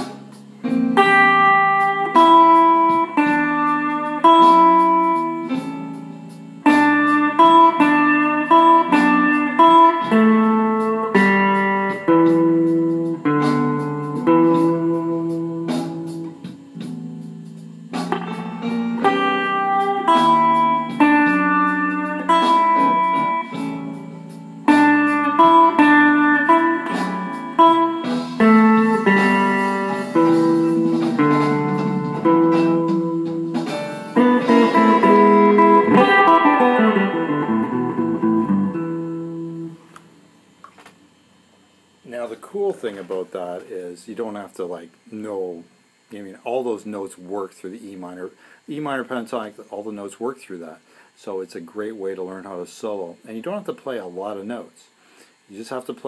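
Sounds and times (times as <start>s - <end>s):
electric guitar blues licks: 0.0s - 41.1s.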